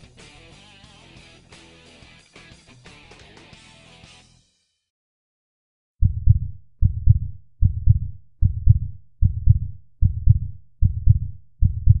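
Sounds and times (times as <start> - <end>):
heartbeat double thump: 6.0 - 12.0.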